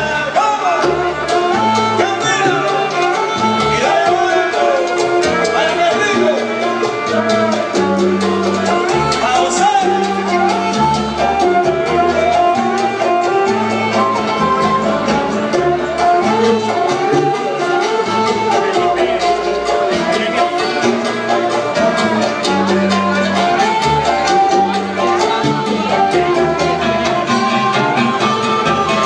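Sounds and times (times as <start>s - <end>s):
live salsa band playing: 0.0s - 29.0s.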